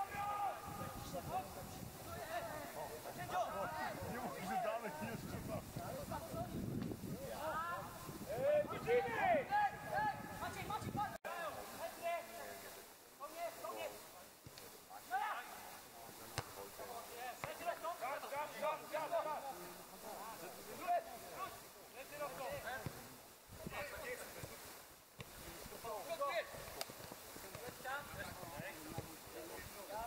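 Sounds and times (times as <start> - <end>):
people shouting and calling: 0.0 - 1.0, 7.3 - 11.6.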